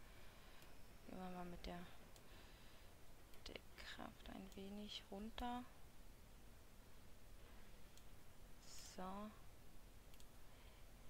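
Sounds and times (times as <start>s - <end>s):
computer mouse click: 10.1s - 10.4s.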